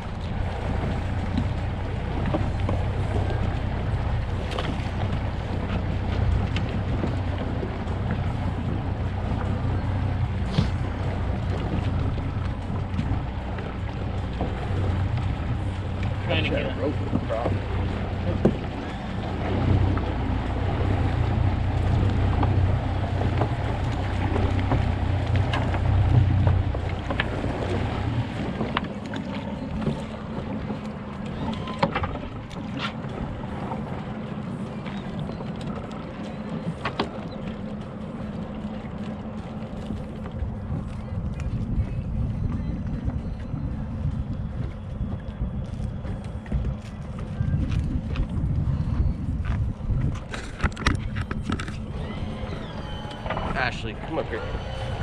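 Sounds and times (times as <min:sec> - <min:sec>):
outboard motor running: 0:00.0 - 0:55.0
wind noise on microphone: 0:40.4 - 0:53.7.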